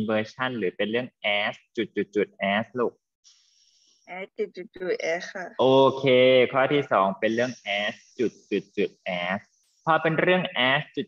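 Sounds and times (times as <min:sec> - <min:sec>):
person speaking: 0:00.0 - 0:02.9, 0:04.1 - 0:11.0.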